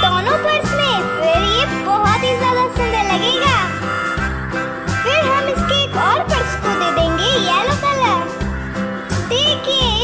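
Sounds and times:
repeating bass line: 0.0s - 10.0s.

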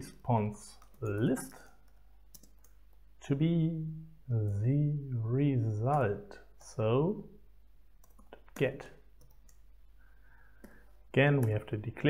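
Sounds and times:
computer keyboard keystrokes: 1.8s - 2.8s, 8.0s - 9.6s.

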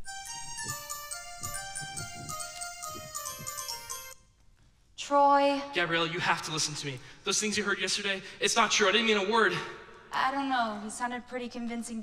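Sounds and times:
descending chiming electronic notes: 0.0s - 4.2s
soft low thumps: 0.2s - 4.2s.

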